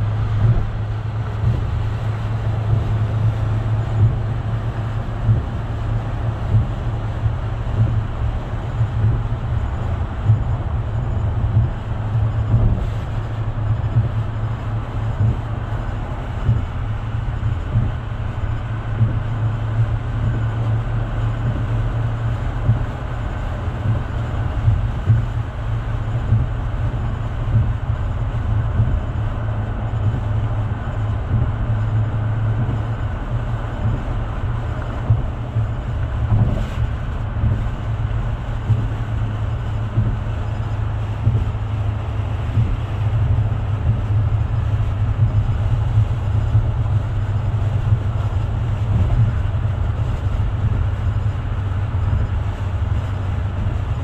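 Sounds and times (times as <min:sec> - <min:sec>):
car engine drone: 0:00.0 - 0:54.0
road noise: 0:00.0 - 0:54.0.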